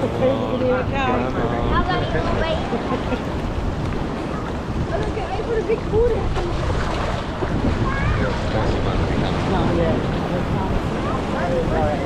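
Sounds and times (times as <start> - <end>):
wind buffeting microphone: 0.0 - 12.0
sea water splashing in rock pool: 1.8 - 12.0.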